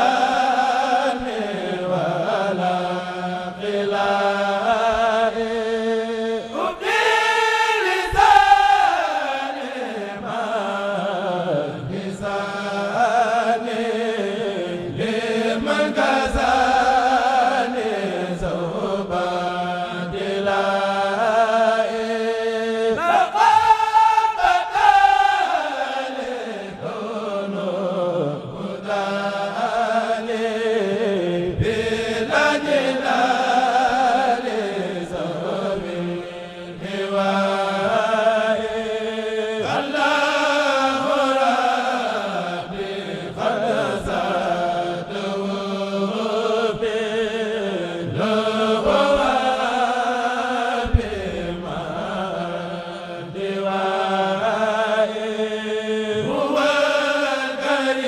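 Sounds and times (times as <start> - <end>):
men's choir chanting in unison: 0.0 - 58.0.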